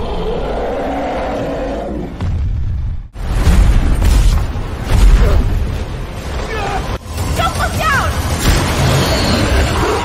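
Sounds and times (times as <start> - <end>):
steady roar: 0.0 - 2.2.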